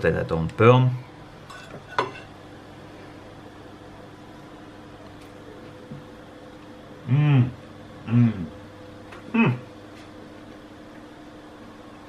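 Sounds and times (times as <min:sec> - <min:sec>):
faint steady hum: 0:00.0 - 0:12.0
fork clinking on plate: 0:01.5 - 0:02.3.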